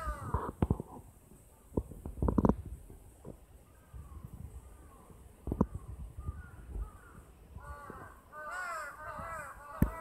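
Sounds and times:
crows cawing: 0.0s - 0.5s, 6.2s - 10.0s.

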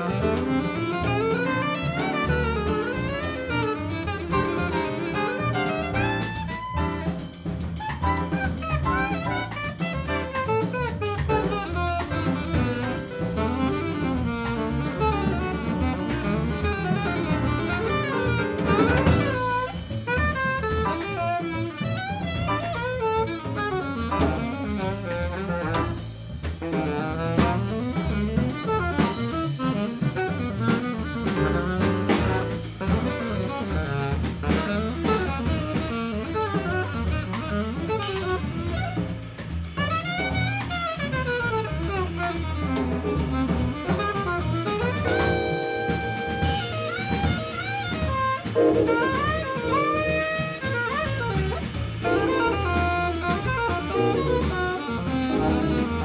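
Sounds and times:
alto saxophone melody: 0.0s - 56.0s
double bass: 0.0s - 56.0s
drum kit with busy cymbals: 0.0s - 56.0s.

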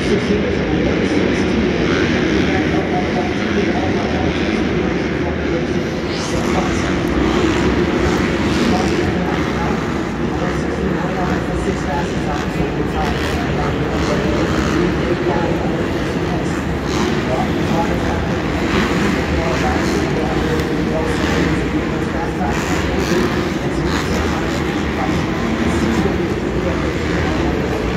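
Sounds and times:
crowd voices: 0.0s - 27.9s
dirt bike engines droning: 0.0s - 27.9s.

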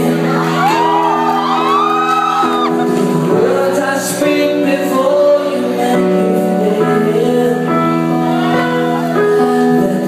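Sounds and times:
man singing: 0.0s - 1.2s, 2.4s - 10.0s
audience shouting and whooping: 0.2s - 3.2s.

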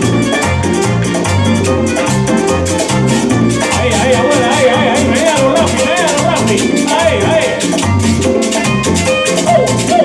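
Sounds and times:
bass notes: 0.0s - 10.0s
hand percussion strokes: 0.0s - 10.0s
wavering melody line: 0.0s - 10.0s.

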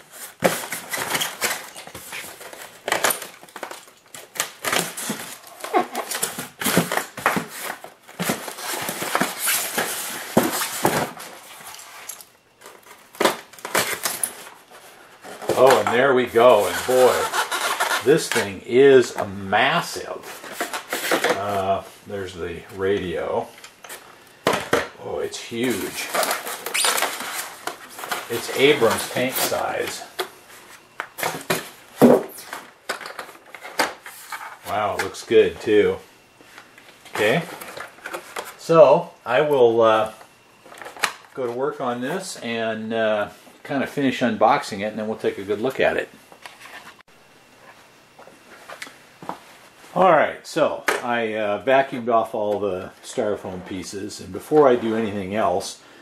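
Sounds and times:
styrofoam squeaking and rubbing: 0.0s - 2.5s, 4.8s - 11.7s, 16.5s - 18.3s, 25.5s - 29.8s
styrofoam rubbing and creaking: 13.8s - 18.5s, 25.4s - 30.0s.

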